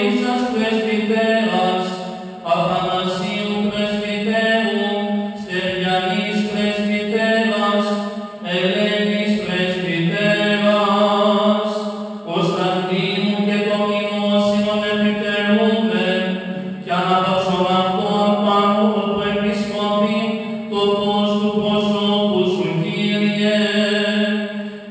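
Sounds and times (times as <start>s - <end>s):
person chanting a melody: 0.0s - 24.9s.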